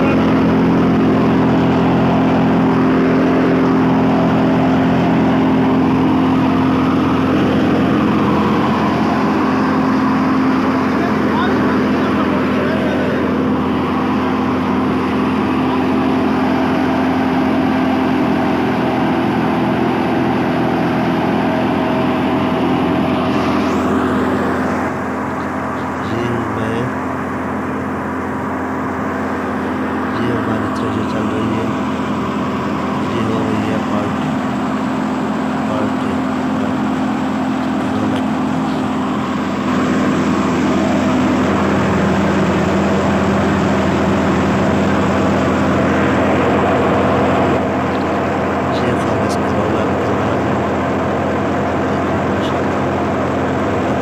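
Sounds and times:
thresher machine drone: 0.0 - 54.0.

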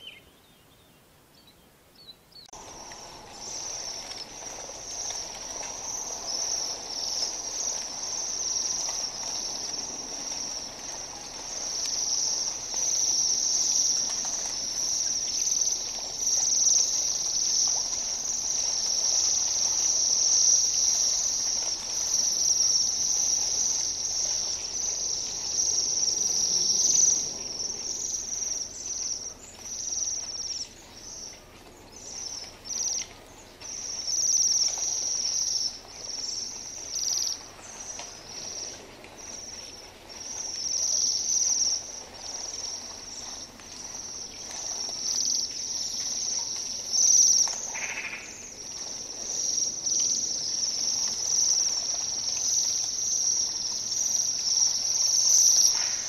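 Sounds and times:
birds trilling calls: 0.0 - 56.0.

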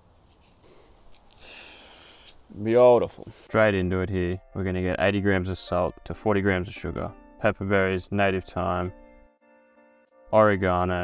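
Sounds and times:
person sniffing through the nose: 0.2 - 2.5.

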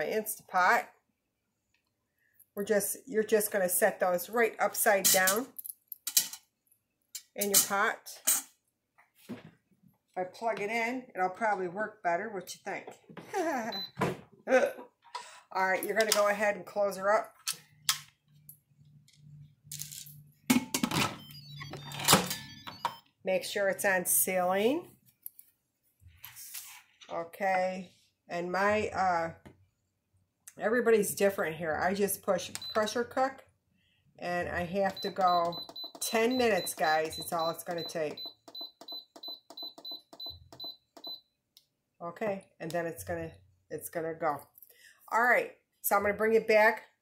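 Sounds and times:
short high beeps with clicks: 34.9 - 41.2.

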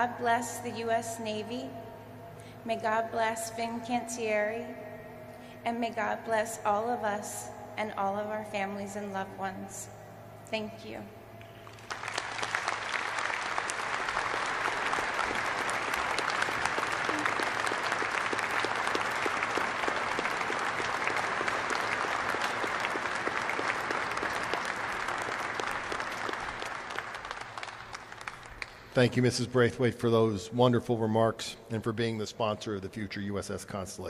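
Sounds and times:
audience applauding: 11.4 - 29.3.

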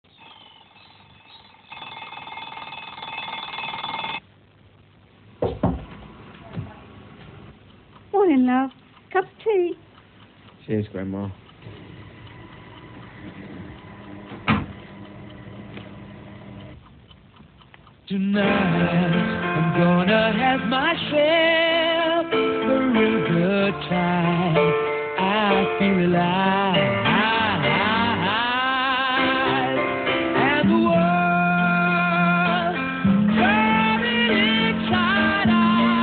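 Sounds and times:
electric bell ringing: 0.1 - 4.2.

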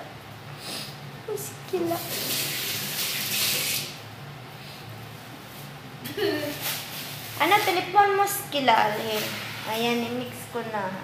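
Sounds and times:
low room noise: 0.0 - 11.0
woman's voice: 1.3 - 2.4, 7.4 - 11.0.

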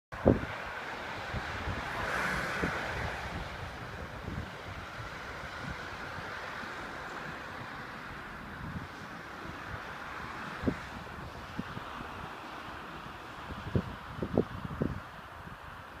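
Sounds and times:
wind blowing across microphone: 0.1 - 16.0.

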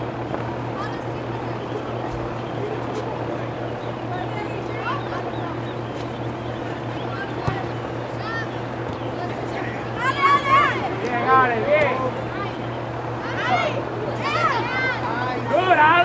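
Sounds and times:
distant players shouting: 0.0 - 16.0
steady low hum: 0.0 - 16.0.

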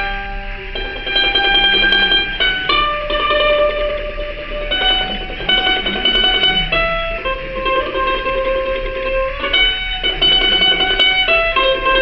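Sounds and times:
acoustic guitar chords strummed: 0.0 - 12.0.

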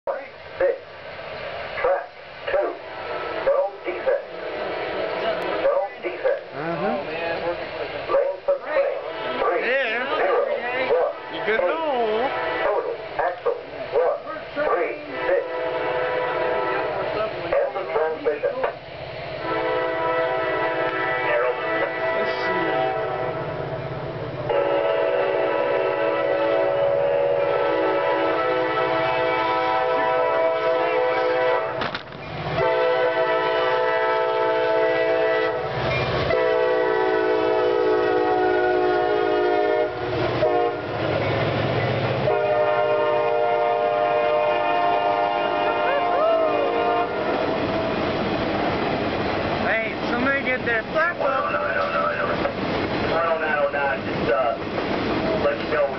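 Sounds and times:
train rumble: 0.0 - 55.9
locomotive air horn blasts: 2.8 - 3.4, 9.0 - 9.6, 11.2 - 12.9, 15.1 - 17.2, 19.4 - 23.6, 24.5 - 31.8, 32.6 - 41.0, 42.3 - 48.0.

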